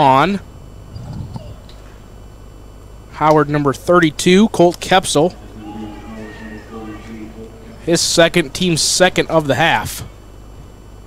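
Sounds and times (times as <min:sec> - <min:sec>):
low steady hum: 0:00.1 - 0:11.0.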